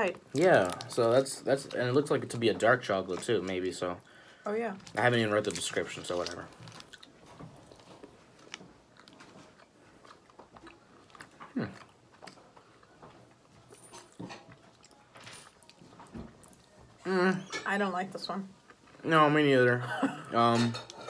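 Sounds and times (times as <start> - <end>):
chewing soft chocolate: 4.8 - 13.7.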